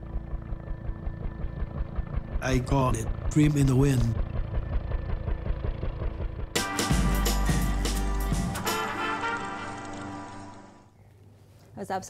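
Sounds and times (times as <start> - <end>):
helicopter rotor beating: 0.0 - 10.9.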